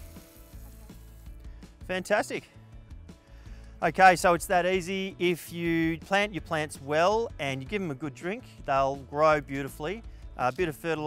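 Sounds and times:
hose nozzle spraying water: 0.0s - 1.7s
soft background music: 0.0s - 11.0s.

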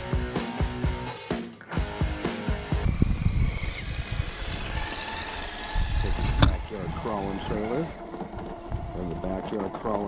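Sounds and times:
toy truck motor whining: 2.8s - 10.0s.

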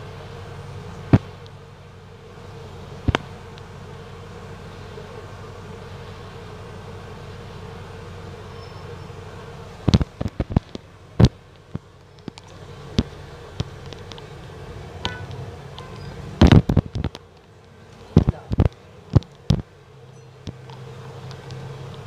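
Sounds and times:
bus hum and rumble: 0.0s - 22.0s.

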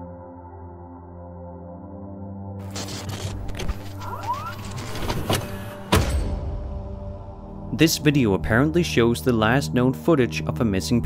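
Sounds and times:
dark music drone: 0.0s - 11.0s.

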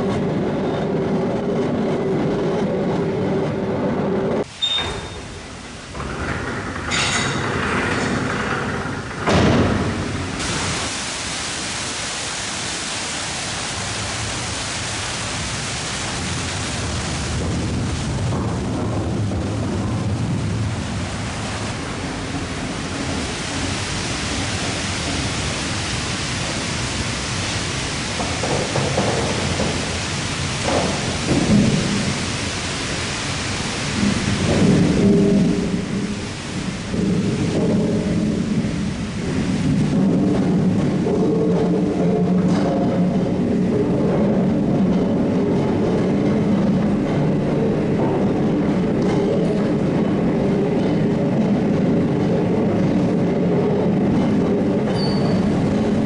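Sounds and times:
gearing and cable drum rumble: 0.0s - 4.5s, 5.3s - 10.9s, 13.4s - 56.0s
rushing water: 4.3s - 56.0s.

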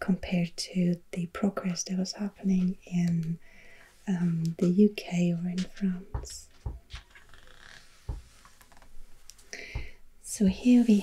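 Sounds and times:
soft low thump: 5.6s - 7.0s, 9.8s - 10.0s
paper rustling: 5.6s - 9.0s.

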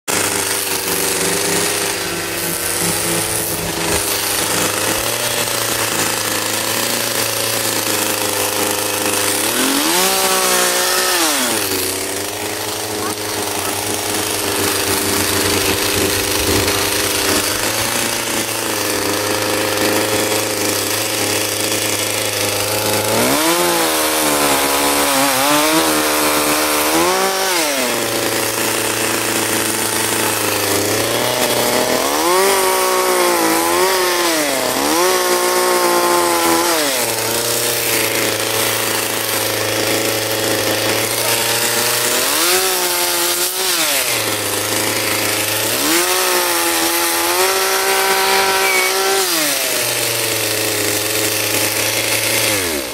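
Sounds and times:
chainsaw idling and revving: 0.0s - 52.9s.

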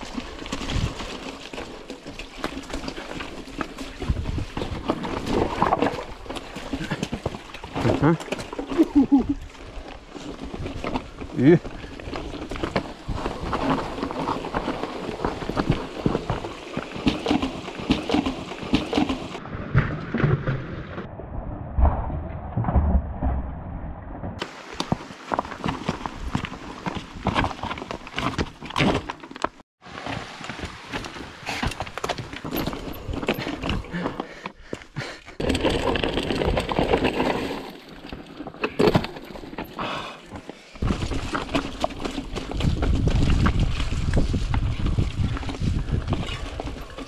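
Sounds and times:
mountain bike rattling over stones: 0.0s - 20.6s, 24.4s - 47.0s.

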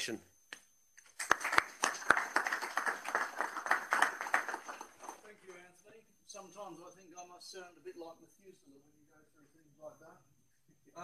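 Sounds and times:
audience applauding: 1.0s - 5.3s.

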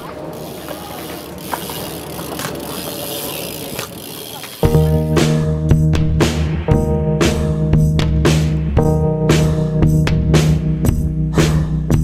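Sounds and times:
bike freewheel hub ticking: 0.0s - 5.0s.

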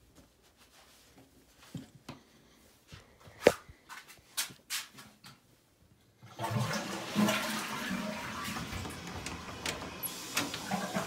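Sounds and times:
toilet flushing: 6.2s - 11.0s.

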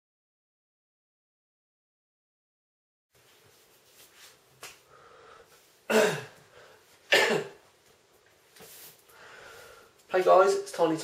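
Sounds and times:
man coughing: 5.9s - 6.4s, 7.1s - 7.6s.

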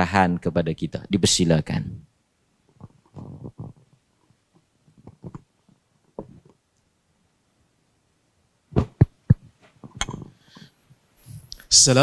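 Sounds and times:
microphone handling rubs and bumps: 2.7s - 6.6s, 8.7s - 11.5s.

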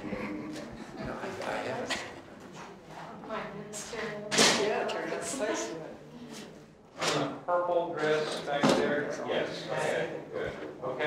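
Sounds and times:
group talking quietly: 0.0s - 11.0s.

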